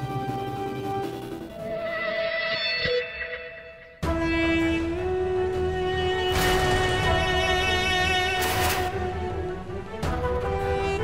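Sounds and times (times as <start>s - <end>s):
music of sustained held tones: 0.0s - 11.0s.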